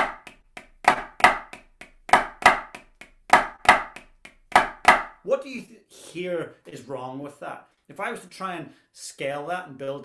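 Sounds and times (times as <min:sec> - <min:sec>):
drumsticks on a practice pad: 0:00.0 - 0:05.1.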